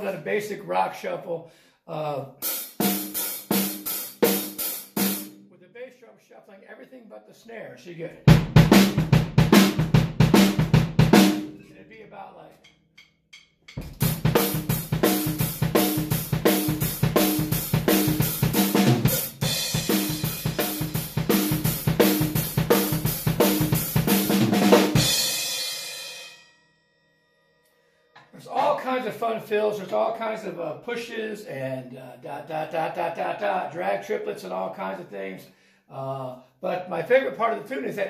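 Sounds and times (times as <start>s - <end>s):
acoustic drum kit playing: 2.4s - 5.4s, 8.3s - 11.7s, 13.4s - 26.3s, 28.5s - 29.0s.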